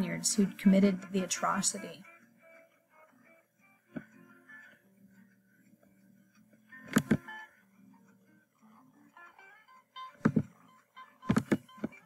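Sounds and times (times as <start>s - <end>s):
faint guitar music: 0.0s - 12.0s
computer mouse clicking: 6.8s - 7.3s, 11.2s - 12.0s.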